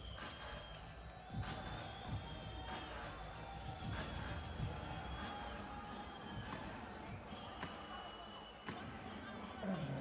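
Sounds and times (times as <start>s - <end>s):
drums pounding slow beat: 0.0s - 7.1s
arena crowd noise: 0.0s - 10.0s.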